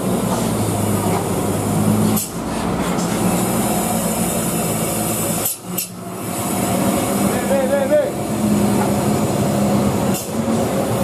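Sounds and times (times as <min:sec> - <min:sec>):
truck diesel engine running: 0:00.0 - 0:11.0.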